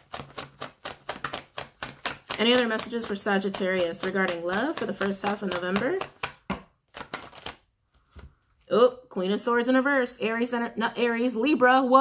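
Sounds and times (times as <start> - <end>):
cards being shuffled: 0.0 - 8.7.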